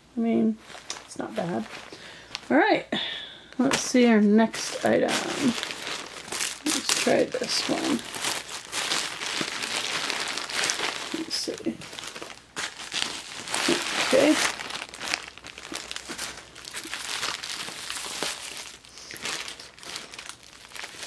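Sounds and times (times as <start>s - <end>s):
bubble wrap crackling: 0.4s - 2.8s, 3.5s - 21.0s
plastic bag crinkling: 0.5s - 2.7s, 3.5s - 21.0s.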